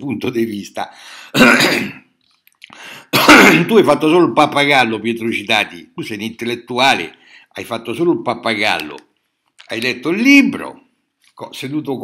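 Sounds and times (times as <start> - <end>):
faint breath: 0.9 - 1.4, 2.7 - 3.1, 7.2 - 7.5
man coughing: 1.4 - 2.0, 3.1 - 3.8.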